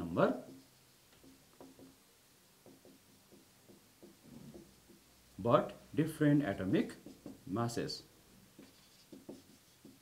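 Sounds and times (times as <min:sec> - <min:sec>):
marker pen scratching on whiteboard: 0:00.3 - 0:02.0, 0:02.6 - 0:05.1, 0:06.6 - 0:07.6, 0:08.5 - 0:10.0.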